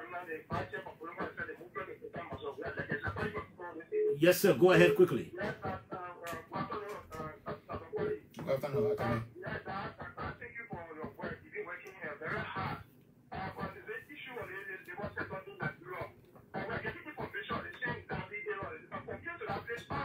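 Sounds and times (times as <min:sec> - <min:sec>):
person talking over telephone: 0:00.0 - 0:20.0.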